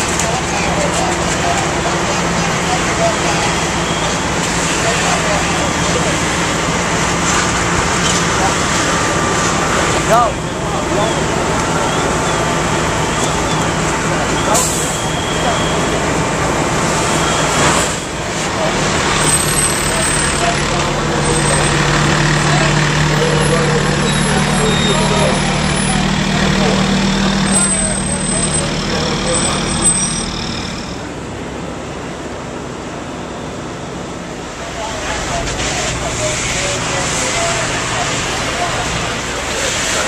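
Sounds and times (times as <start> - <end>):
jumble of voices: 0.0 - 31.3, 34.2 - 40.0
fire truck engines droning: 0.0 - 40.0
street noise: 0.0 - 40.0.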